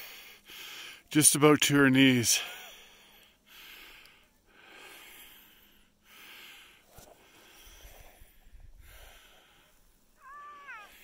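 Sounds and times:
faint breathing: 0:00.0 - 0:01.1, 0:02.4 - 0:10.2.

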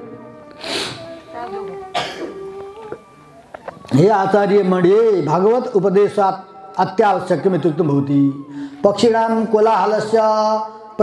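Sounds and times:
man coughing: 0:01.9 - 0:02.4
man clearing throat: 0:01.9 - 0:02.5.

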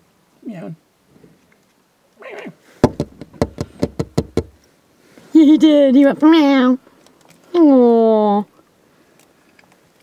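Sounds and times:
quick sharp knocks: 0:02.8 - 0:04.6.

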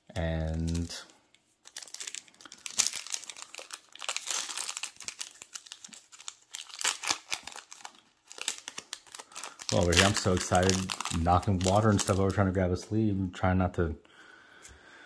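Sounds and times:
foil wrapper tearing and crinkling: 0:00.3 - 0:01.0, 0:01.6 - 0:12.4.

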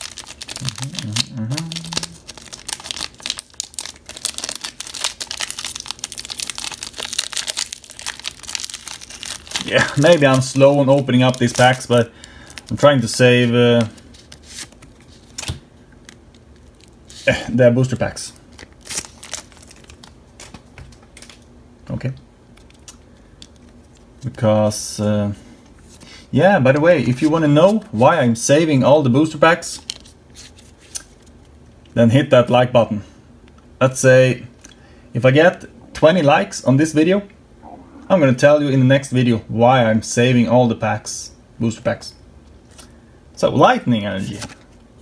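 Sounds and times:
foil pack tearing open: 0:00.0 - 0:12.8, 0:18.5 - 0:20.5
foil wrapper crinkling: 0:00.0 - 0:21.5.

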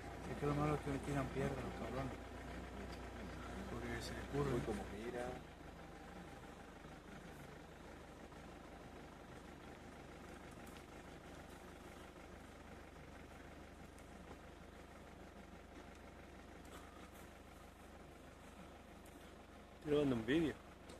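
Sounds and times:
faint low hum: 0:00.0 - 0:20.9.

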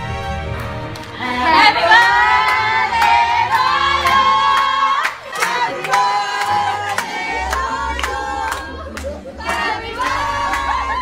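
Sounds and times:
group of voices singing: 0:01.2 - 0:11.0.

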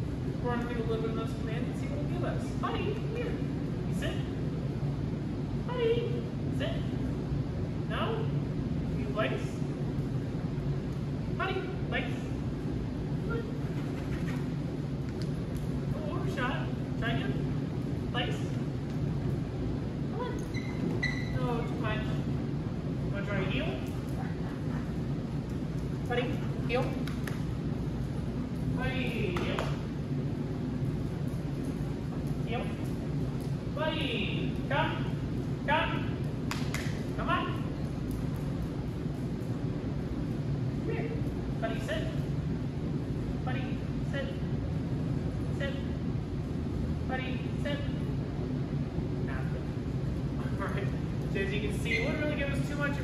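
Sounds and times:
low room hum: 0:00.0 - 0:53.0
light ticks on concrete floor: 0:15.0 - 0:15.7.

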